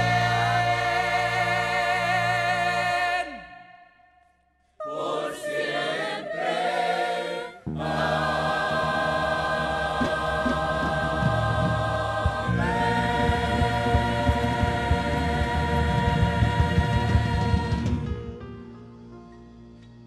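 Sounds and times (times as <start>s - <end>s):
choir singing with instruments: 0.0s - 4.0s, 4.8s - 18.5s
soundtrack music: 7.7s - 19.2s.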